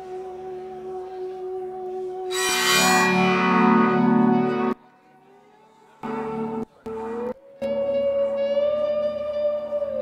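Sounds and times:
live music held note: 0:02.3 - 0:04.8, 0:06.0 - 0:10.0.

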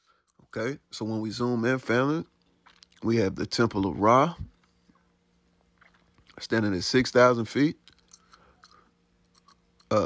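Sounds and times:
soft breathing: 0:08.1 - 0:09.0.

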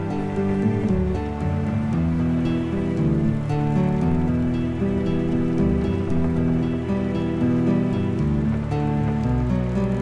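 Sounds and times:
faint rain: 0:00.0 - 0:10.0
instrumental pirate-style music: 0:00.0 - 0:10.0
sea ambience: 0:00.0 - 0:10.0.

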